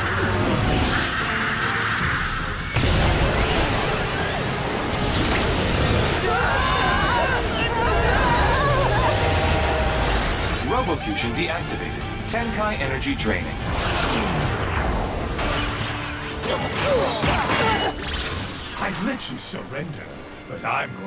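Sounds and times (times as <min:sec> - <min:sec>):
background music: 0:00.0 - 0:21.0
wavering cries: 0:06.2 - 0:11.2.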